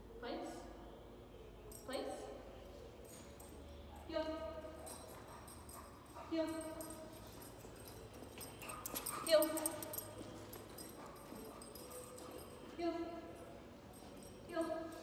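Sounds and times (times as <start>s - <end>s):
faint clicks and clinks: 1.6s - 15.0s
woman calling commands: 4.0s - 4.8s, 6.2s - 7.0s, 9.1s - 10.0s, 12.7s - 13.5s, 14.5s - 15.0s.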